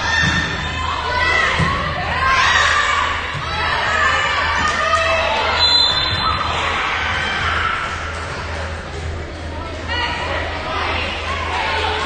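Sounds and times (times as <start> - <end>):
girls shouting and cheering: 0.0 - 8.1.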